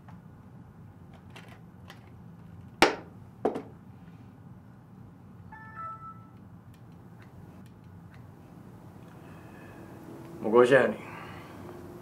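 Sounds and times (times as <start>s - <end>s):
low room hum: 0.0s - 12.0s
short chime tones: 5.5s - 6.4s.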